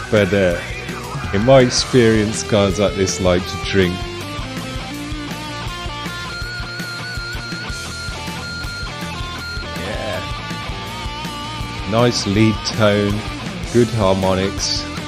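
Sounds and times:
hardcore punk band music: 0:00.0 - 0:15.0.

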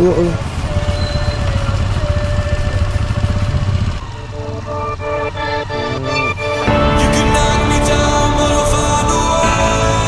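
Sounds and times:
motorcycle engine running: 0:00.0 - 0:09.6
music with distinct notes: 0:04.4 - 0:10.0.

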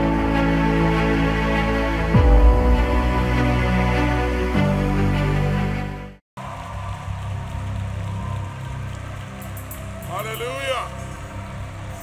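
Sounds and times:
intro music: 0:00.0 - 0:06.2.

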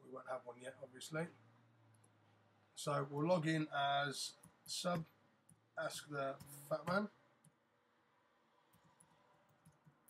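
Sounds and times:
keyboard and mouse clicks: 0:08.7 - 0:10.0.

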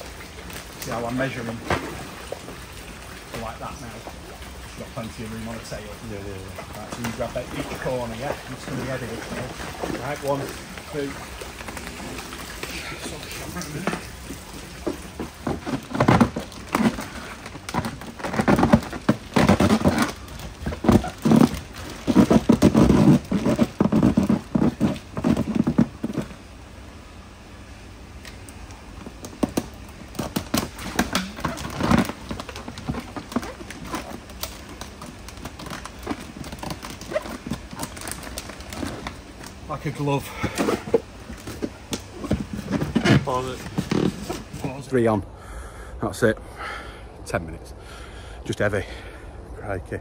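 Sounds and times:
scattered crackles and clicks: 0:00.0 - 0:26.4, 0:28.2 - 0:44.9
water splashing and sloshing: 0:00.0 - 0:45.1
irregular thuds: 0:14.8 - 0:26.4.

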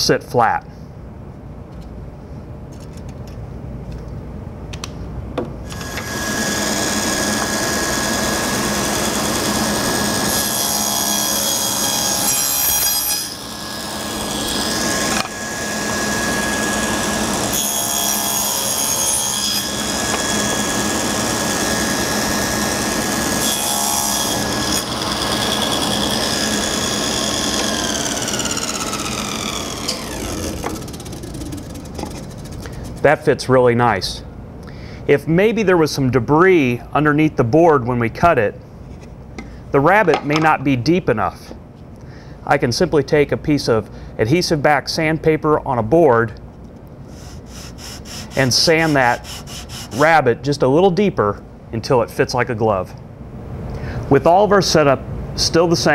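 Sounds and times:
saw winding down whine: 0:05.7 - 0:12.4, 0:13.3 - 0:33.0
table saw cutting wood: 0:05.7 - 0:33.0, 0:47.1 - 0:50.2.

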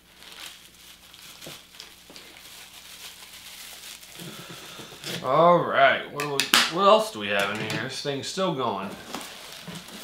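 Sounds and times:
bubble wrap rustling: 0:00.0 - 0:05.3, 0:08.6 - 0:10.0.

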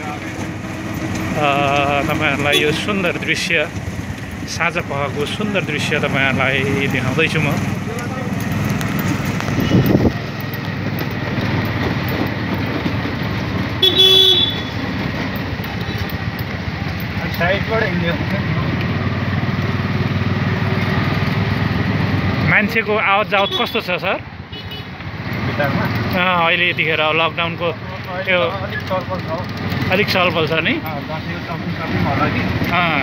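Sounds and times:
auto-rickshaw running and road noise: 0:00.0 - 0:33.0
vehicle horn toot: 0:02.5 - 0:02.8, 0:13.8 - 0:14.8, 0:23.3 - 0:23.8.

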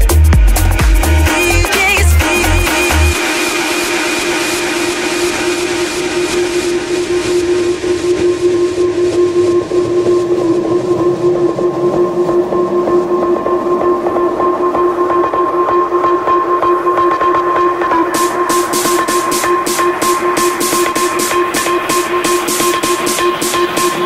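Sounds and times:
fast ticking rhythm: 0:00.0 - 0:07.3, 0:09.9 - 0:24.0
electronic house music: 0:00.0 - 0:24.0.

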